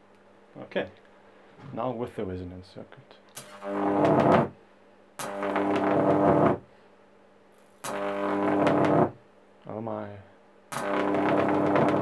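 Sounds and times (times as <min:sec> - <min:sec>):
electric arc buzzing and crackling: 0:03.4 - 0:04.6, 0:05.2 - 0:06.7, 0:07.7 - 0:09.2, 0:10.7 - 0:12.0.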